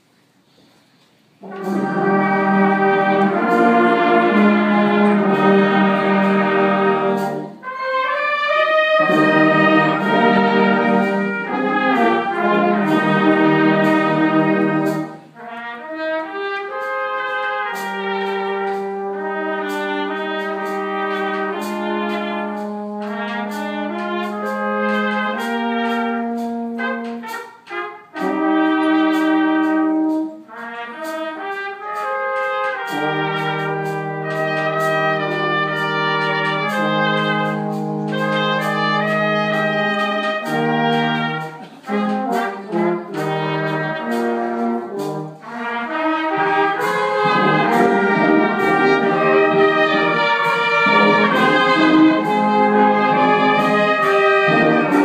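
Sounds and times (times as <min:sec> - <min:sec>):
brass band playing held chords: 0:00.5 - 0:55.0.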